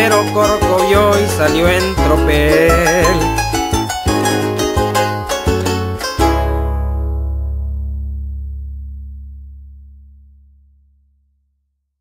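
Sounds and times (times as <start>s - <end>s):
plucked strings and bass chord: 0.0s - 11.3s.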